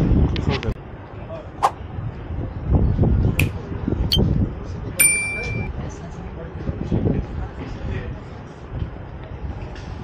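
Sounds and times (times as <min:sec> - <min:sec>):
murmur of people talking: 0:03.4 - 0:10.0
short metallic ding: 0:05.0 - 0:05.7.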